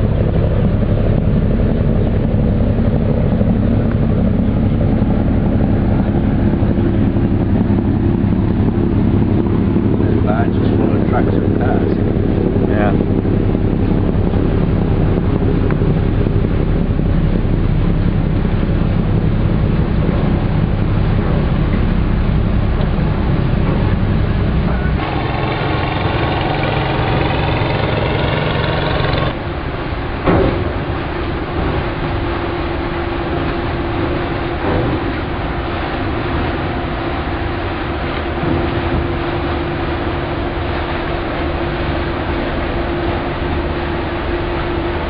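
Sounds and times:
motorboat engine buzzing: 0:00.0 - 0:45.0
ship engine drone: 0:00.0 - 0:45.0
wind on microphone: 0:00.0 - 0:45.0.

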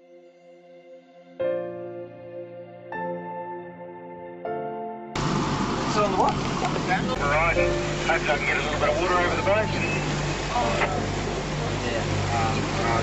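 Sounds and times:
boat engine droning: 0:05.2 - 0:13.0
wind and water rushing: 0:05.2 - 0:13.0
indistinct voices: 0:05.9 - 0:13.0.

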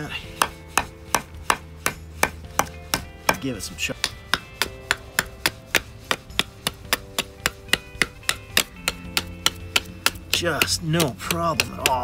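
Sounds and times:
knife chopping into wood: 0:00.0 - 0:12.0.

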